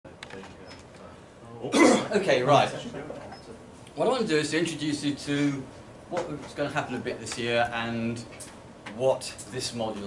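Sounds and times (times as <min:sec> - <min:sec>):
man coughing: 0:01.7 - 0:02.2.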